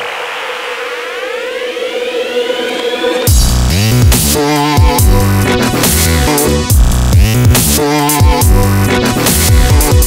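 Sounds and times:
hiss: 0.0s - 2.7s
synth riser sweeps: 0.0s - 5.3s.

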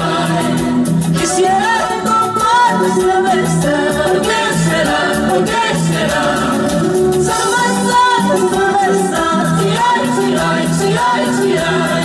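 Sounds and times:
live band playing latin dance music: 0.0s - 12.0s
woman singing into microphone: 0.0s - 12.0s.

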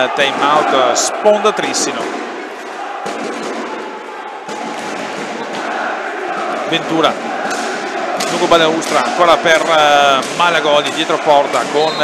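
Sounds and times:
din of spectators' voices: 0.0s - 12.0s.

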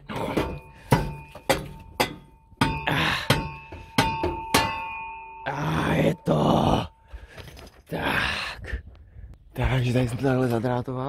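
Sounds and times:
metal knocks and clanks: 0.0s - 5.5s
sheet metal ringing: 0.4s - 7.0s.

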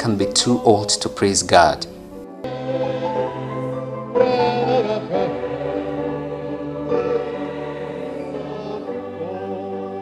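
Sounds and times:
choir singing: 0.0s - 10.0s
keyboard accompaniment: 0.0s - 10.0s.

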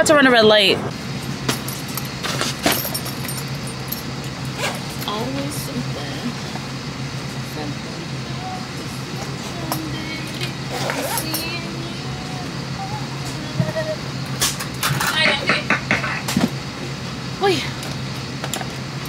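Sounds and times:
airliner cabin hum: 0.0s - 19.0s
faint voices: 7.4s - 14.2s.

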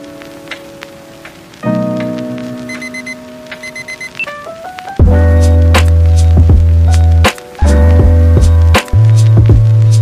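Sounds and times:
crackling patter of soft clicks: 0.0s - 10.0s
short high beeps: 2.7s - 4.4s.

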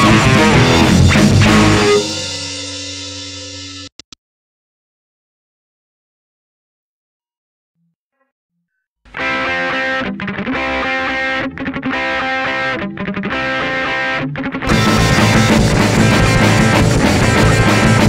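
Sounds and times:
punk band with drums: 0.0s - 3.8s, 14.6s - 18.0s
distorted electric guitar riff: 0.0s - 4.0s, 9.1s - 18.0s.

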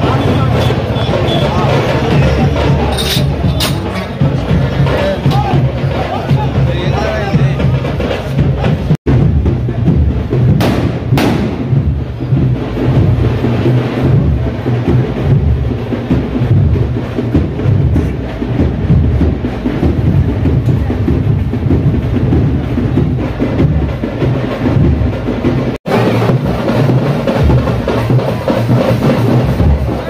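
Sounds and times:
loud drum music: 0.0s - 30.0s
firecracker bang: 10.4s - 12.0s.

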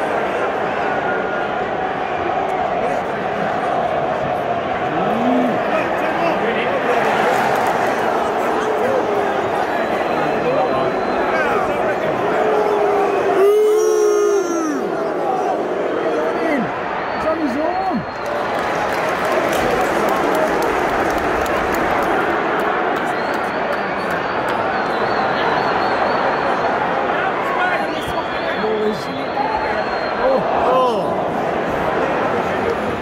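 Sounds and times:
stadium crowd din: 0.0s - 33.0s.

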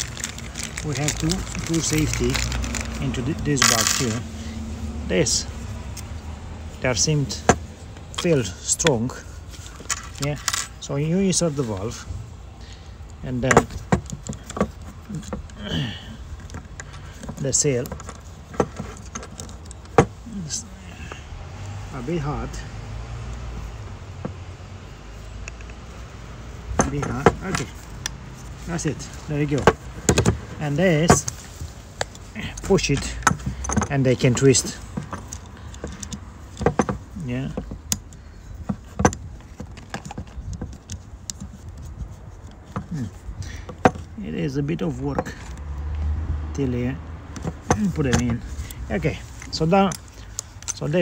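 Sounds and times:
hard plastic clicks and knocks: 13.5s - 15.6s, 29.5s - 30.5s, 34.8s - 41.6s, 43.6s - 44.1s
clicks of valve fitting handled: 25.4s - 25.8s, 26.7s - 28.5s, 29.2s - 44.2s, 47.3s - 51.0s.

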